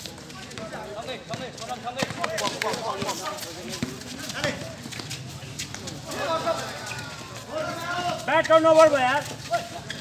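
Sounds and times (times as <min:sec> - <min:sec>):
players' voices: 0:00.0 - 0:10.0
shoes hitting concrete court: 0:00.0 - 0:10.0.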